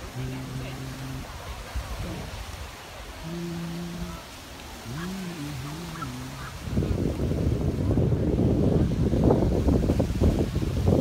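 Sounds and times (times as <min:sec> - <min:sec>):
person humming: 0:00.0 - 0:01.4, 0:02.0 - 0:02.4, 0:03.2 - 0:06.9
wind buffeting microphone: 0:00.0 - 0:11.0.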